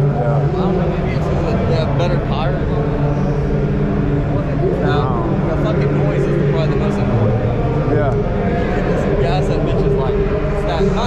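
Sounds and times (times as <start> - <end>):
man talking: 0.0 - 0.6, 7.9 - 8.2
low mechanical hum: 0.0 - 11.0.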